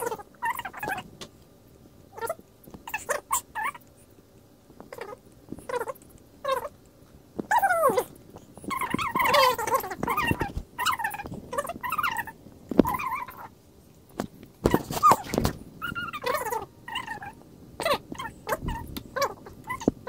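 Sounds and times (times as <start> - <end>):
high-pitched vocal calls: 0.0 - 1.1, 2.1 - 3.9, 4.9 - 6.8, 7.5 - 13.5, 14.6 - 20.0.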